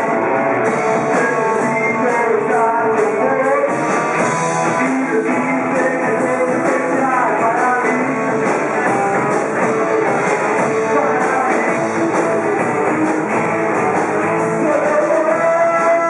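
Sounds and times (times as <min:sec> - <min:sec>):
drums: 0:00.0 - 0:16.0
electric guitar: 0:00.0 - 0:16.0
rock band playing: 0:00.0 - 0:16.0.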